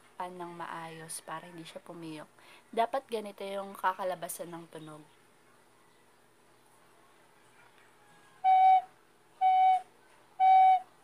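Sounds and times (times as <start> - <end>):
recorder notes: 8.4 - 11.0.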